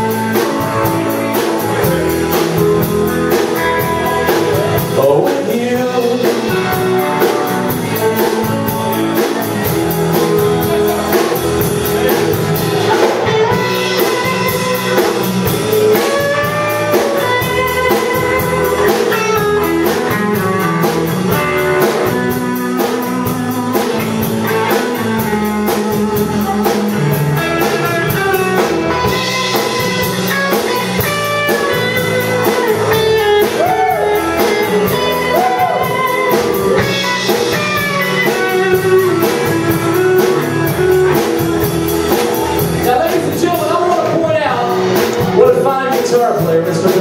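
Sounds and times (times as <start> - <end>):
bass guitar: 0.0 - 47.0
drum kit beat: 0.0 - 47.0
electric guitar lead: 0.0 - 47.0.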